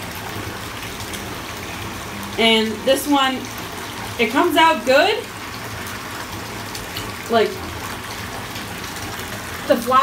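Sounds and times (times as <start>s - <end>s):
bathtub tap running: 0.0s - 10.0s.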